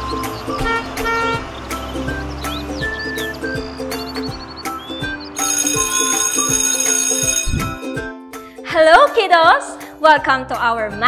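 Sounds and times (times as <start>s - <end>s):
cheerful background music: 0.0s - 11.0s
bell ringing: 5.4s - 8.0s.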